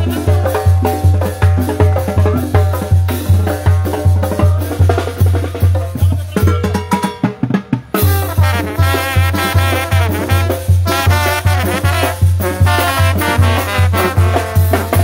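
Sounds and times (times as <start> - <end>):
sousaphone bass pulsing: 0.0 - 6.8
banda music with brass: 0.0 - 15.0
drum hits: 0.0 - 15.0.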